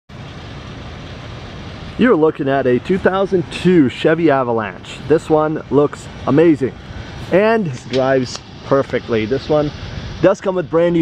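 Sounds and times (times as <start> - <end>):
low outdoor rumble: 0.1 - 11.0.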